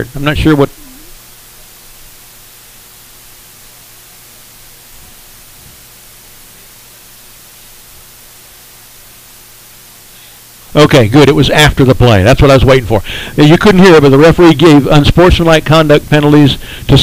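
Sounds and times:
faint low hum: 0.0 - 17.0
steady hiss: 0.0 - 17.0.

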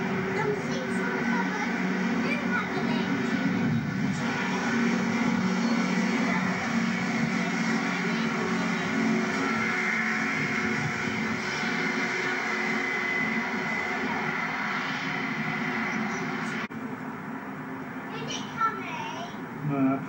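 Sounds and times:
diesel train droning past: 0.0 - 19.6.

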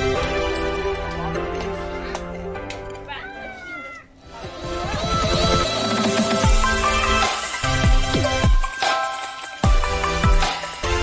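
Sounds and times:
meow-like cry: 3.1 - 4.2
electronic music with bass sweeps: 4.3 - 11.0.

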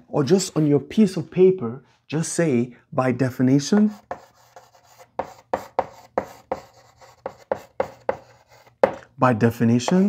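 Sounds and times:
chalk tapping on blackboard: 3.7 - 9.0, 9.8 - 10.0.

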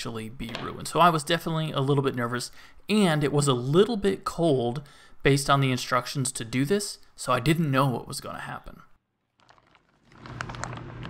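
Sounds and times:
plastic bag crinkling: 9.2 - 11.0
paper sheet handled: 9.3 - 11.0.

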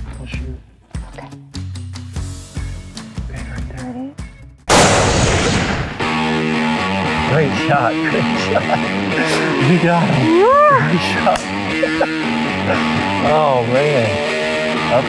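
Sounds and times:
rifle shot: 4.7 - 6.2
loud electric guitar music: 4.7 - 15.0.

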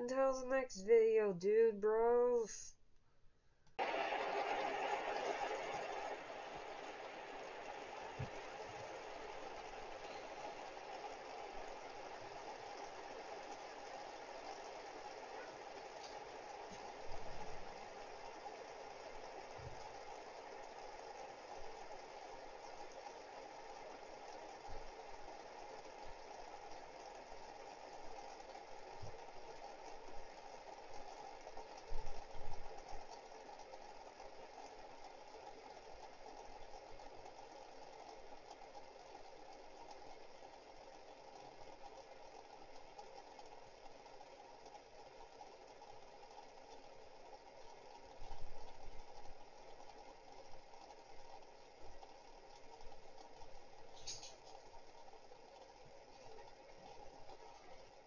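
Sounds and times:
fidget spinners whirring: 3.7 - 58.0.

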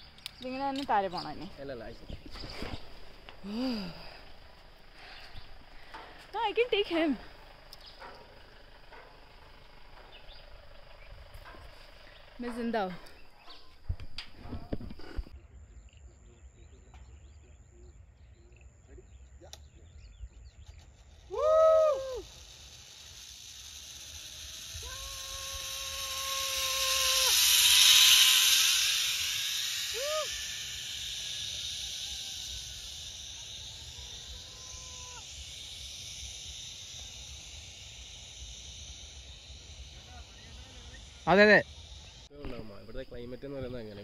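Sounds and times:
zipline trolley hiss on cable: 0.0 - 15.2, 20.8 - 44.0
rider whooping: 21.2 - 22.4, 24.7 - 32.9, 33.7 - 35.5
long held call: 24.7 - 30.9.

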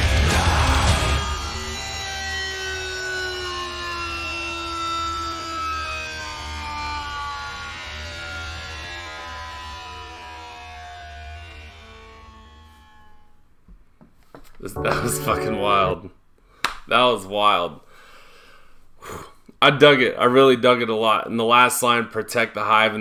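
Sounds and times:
heavy metal band: 0.0 - 1.2
sustained notes sinking in pitch: 14.8 - 16.1.

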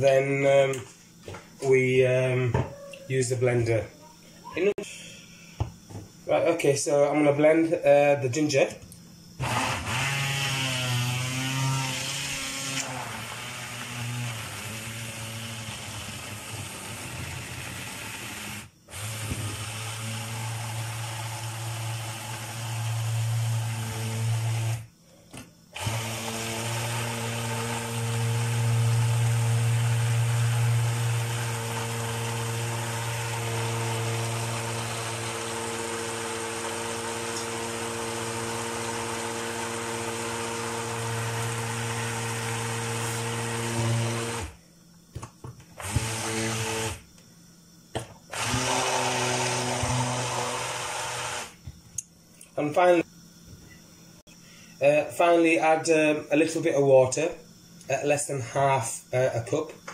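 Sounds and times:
stick blender motor hum: 9.4 - 24.9, 25.8 - 44.6, 45.8 - 47.2, 48.0 - 51.7.

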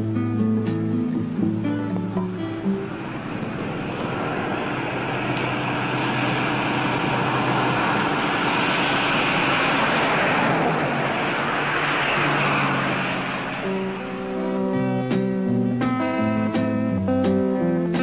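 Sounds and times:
rushing vehicle noise: 0.8 - 16.9.

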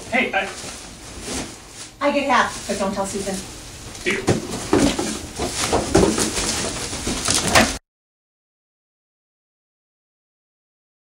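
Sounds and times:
bag rustling: 0.4 - 3.5, 4.1 - 7.8.

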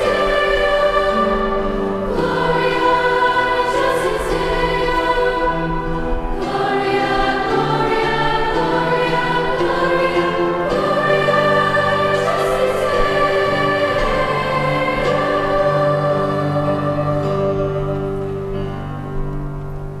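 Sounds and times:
choir of women singing in harmony: 0.0 - 18.8.

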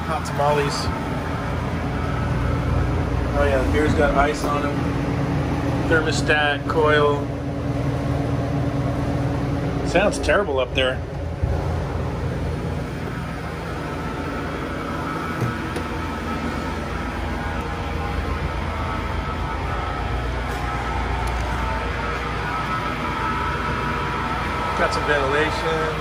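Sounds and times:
faint whine: 0.0 - 26.0
refrigeration equipment humming: 0.0 - 26.0.

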